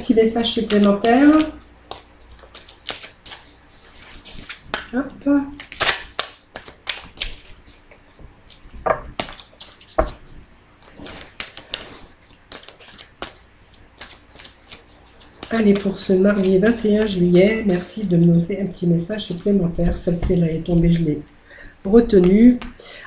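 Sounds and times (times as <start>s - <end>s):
cards being shuffled: 0.3s - 18.5s.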